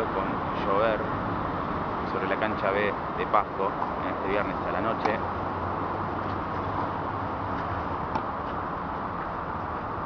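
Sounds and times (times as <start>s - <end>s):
outdoor background noise: 0.0s - 10.0s
tennis ball struck by rackets: 7.6s - 8.6s.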